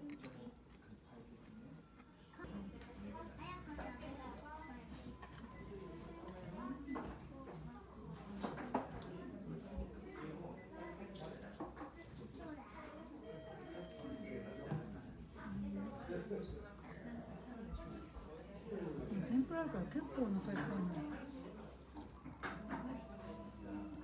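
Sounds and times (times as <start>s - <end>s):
indistinct talk of people: 0.0s - 24.0s.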